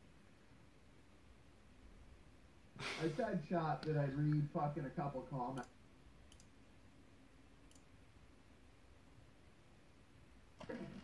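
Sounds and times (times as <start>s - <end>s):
faint clicks: 5.5s - 6.6s, 7.6s - 7.9s.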